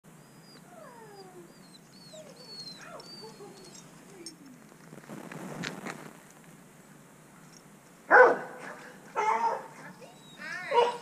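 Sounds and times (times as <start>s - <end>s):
dog whining: 0.2s - 4.0s, 10.0s - 11.0s.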